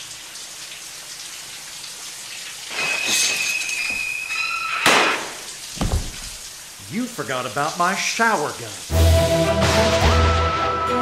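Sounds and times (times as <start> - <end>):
shower spray hissing: 2.2 - 9.1
shrill steady screech: 2.7 - 4.8
low thud: 5.8 - 6.4.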